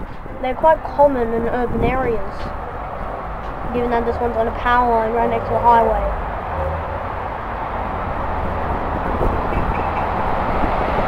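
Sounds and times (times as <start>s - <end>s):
highway traffic: 0.0s - 11.0s.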